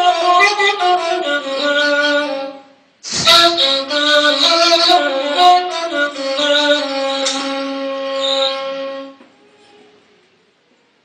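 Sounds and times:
end-blown reed flute note: 0.1s - 1.4s.

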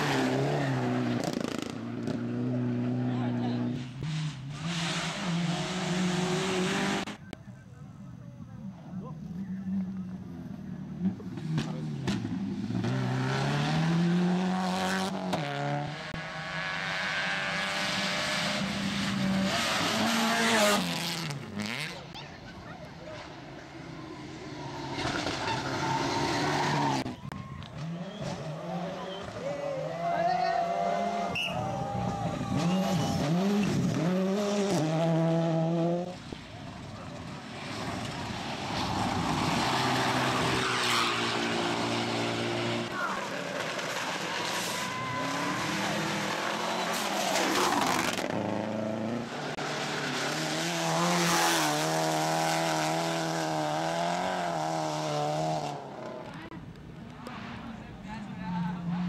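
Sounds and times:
rally car engines revving: 0.0s - 7.4s, 8.6s - 59.0s.

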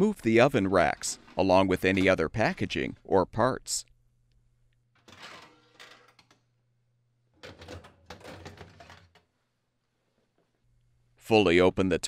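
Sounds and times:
metal oven racks rattling and sliding: 0.2s - 2.9s, 5.0s - 6.4s, 7.4s - 9.2s.

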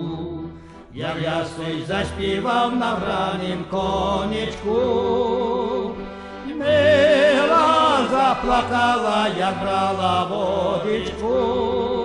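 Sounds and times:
person singing with wide vibrato: 0.0s - 12.0s.

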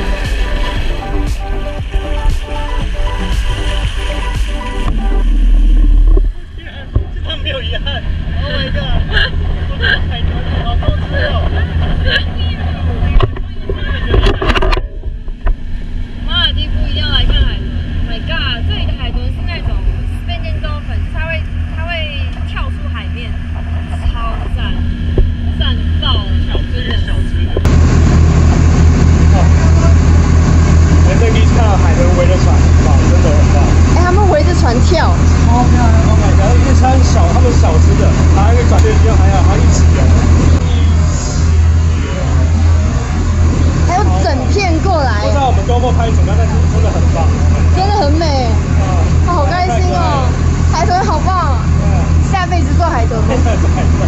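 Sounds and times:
motorboat engine drone: 0.0s - 54.0s
people talking: 6.5s - 15.0s, 16.3s - 27.7s, 28.5s - 54.0s.

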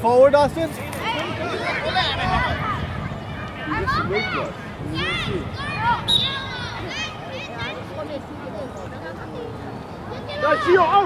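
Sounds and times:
young voices shouting: 0.9s - 8.3s, 10.0s - 11.0s.

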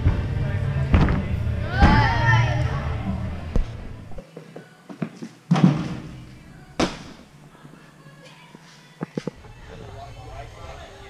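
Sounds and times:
faint gym hall noise: 0.0s - 11.0s.

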